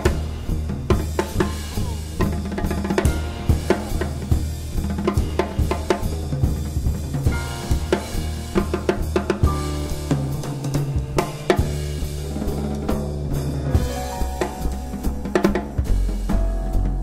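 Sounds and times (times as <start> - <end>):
jazz drum kit: 0.0 - 17.0
plucked double bass: 0.0 - 17.0.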